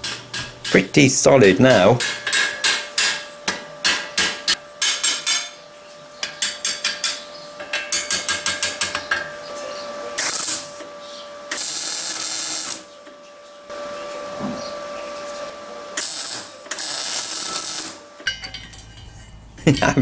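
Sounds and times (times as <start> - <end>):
hammer striking steel: 2.0 - 5.6, 6.2 - 9.3
welder arc noise: 6.2 - 18.3.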